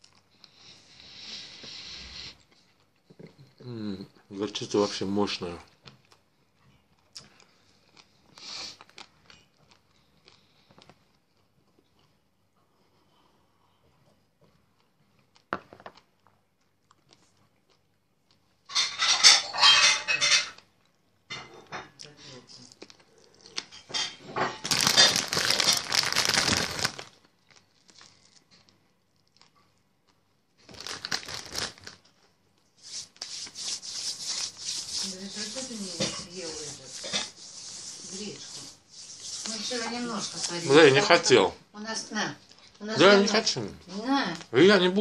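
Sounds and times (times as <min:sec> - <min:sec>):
mouth and eating sounds: 0:22.0 - 0:23.7
packaging crinkling: 0:24.5 - 0:29.5, 0:30.6 - 0:35.8.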